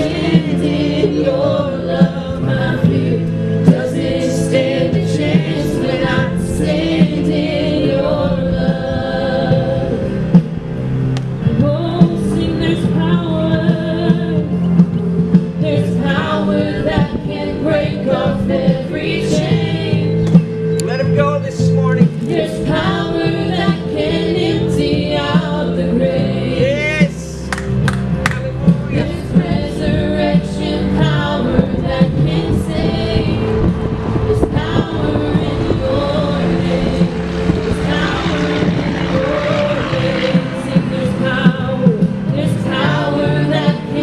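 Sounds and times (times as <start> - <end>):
women singing worship song: 0.0 - 10.7, 11.3 - 20.7, 22.1 - 26.8, 28.9 - 44.0
sustained instrumental chords: 0.0 - 44.0.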